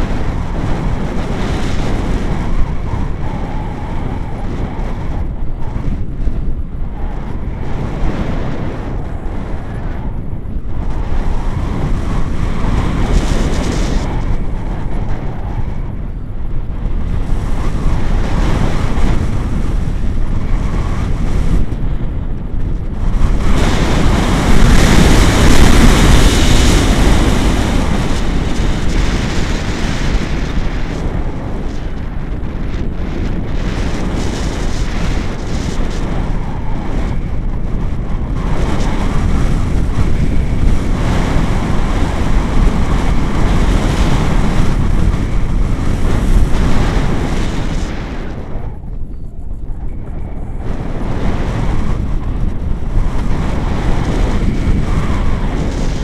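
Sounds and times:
wind rushing over microphone: 0:00.0 - 0:56.0.

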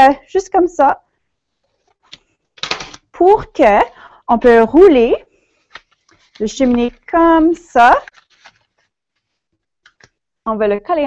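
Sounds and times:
paper rustling and crackling: 0:05.4 - 0:10.2.

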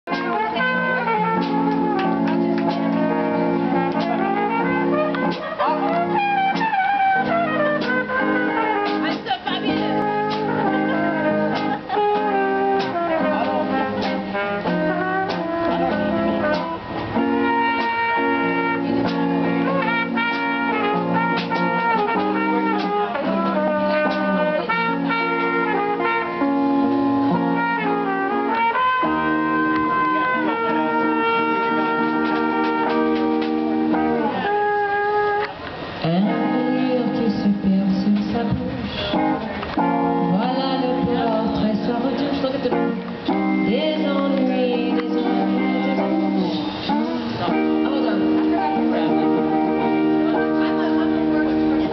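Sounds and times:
bass guitar: 0:00.0 - 0:51.9
brass line: 0:00.0 - 0:51.9
guitars: 0:00.0 - 0:51.9
woman singing: 0:36.0 - 0:39.6, 0:40.2 - 0:47.2.

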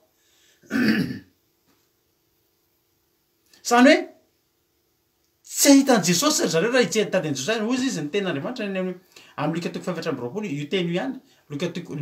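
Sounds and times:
person clearing throat: 0:00.6 - 0:01.4.

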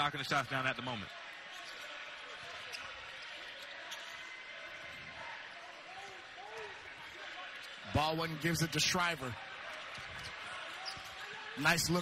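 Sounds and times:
sneaker squeaks: 0:00.2 - 0:05.0, 0:09.8 - 0:12.0.

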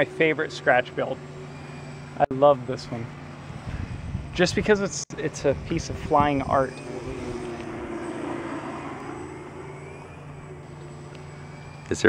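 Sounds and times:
model plane motor buzzing whine: 0:00.0 - 0:04.3, 0:05.6 - 0:12.0.

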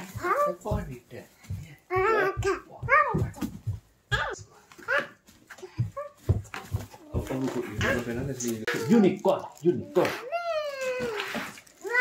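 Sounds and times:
toddler's high-pitched vocal calls: 0:10.0 - 0:12.0.

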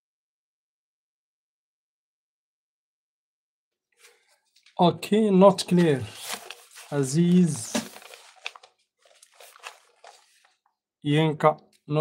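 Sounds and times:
soft rustling: 0:05.7 - 0:10.6.

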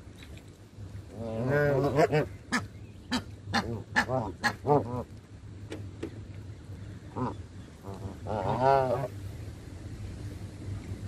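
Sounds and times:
geese calling: 0:07.1 - 0:09.1.

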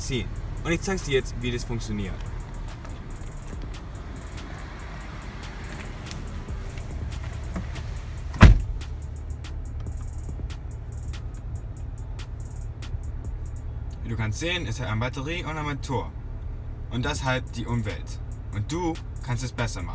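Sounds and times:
car radio music: 0:00.0 - 0:15.8, 0:17.0 - 0:19.9
steady low rumble: 0:00.0 - 0:19.9
car door shutting: 0:02.0 - 0:09.0.

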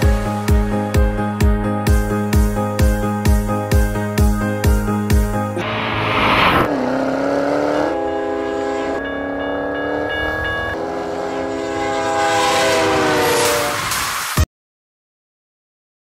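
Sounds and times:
train whistle chord: 0:07.5 - 0:14.3
burst of hiss: 0:13.3 - 0:14.4.

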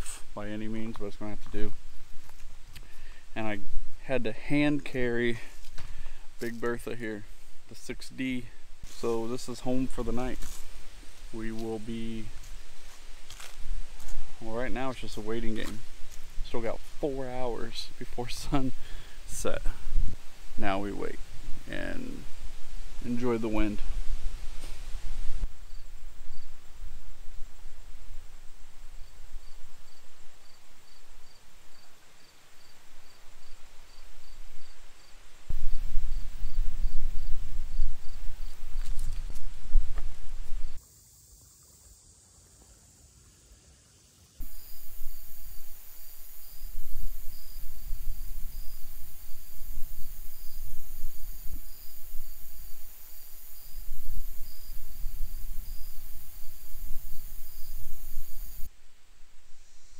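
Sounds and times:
insect chirping: 0:00.0 - 0:04.0, 0:05.2 - 0:59.9
wind buffeting microphone: 0:35.5 - 0:40.8.

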